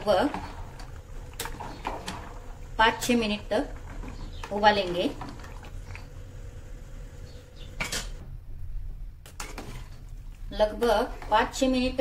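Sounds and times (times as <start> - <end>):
ladle stirring in metal pot: 0.0 - 6.1, 9.2 - 12.0
pot boiling: 0.0 - 8.2.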